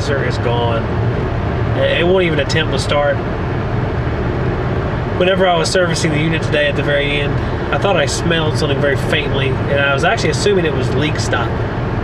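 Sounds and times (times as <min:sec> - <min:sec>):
road and engine noise in cabin: 0:00.0 - 0:12.0.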